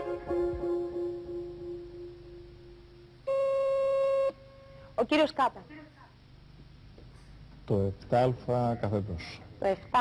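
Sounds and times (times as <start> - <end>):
electronic buzzer beep: 3.2 - 4.4.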